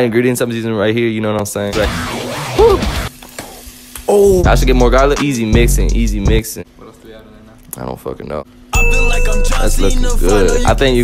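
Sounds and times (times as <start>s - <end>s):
background music: 8.8s - 11.0s.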